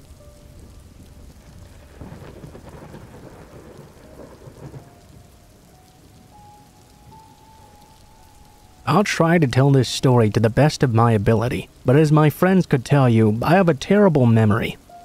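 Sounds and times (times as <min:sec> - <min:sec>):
low rumble of thunder: 0:00.0 - 0:08.8
steady rain: 0:00.0 - 0:15.0.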